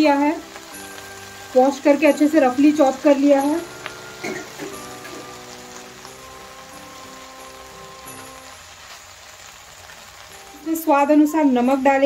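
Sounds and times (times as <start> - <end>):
leaves sizzling in a pan: 0.0 - 12.0
soft background music: 0.0 - 12.0.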